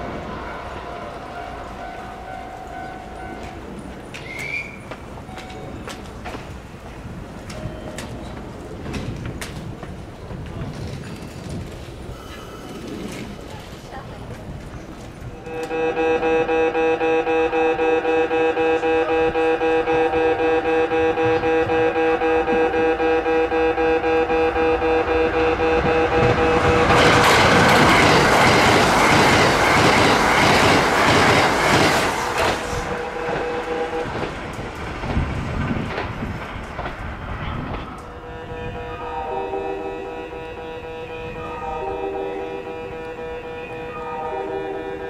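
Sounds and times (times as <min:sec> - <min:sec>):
level-crossing alarm ringing: 0:00.0 - 0:03.8, 0:05.2 - 0:06.8, 0:15.4 - 0:32.0, 0:38.1 - 0:45.0
train wheels clattering over rails: 0:03.3 - 0:15.8, 0:25.8 - 0:38.2.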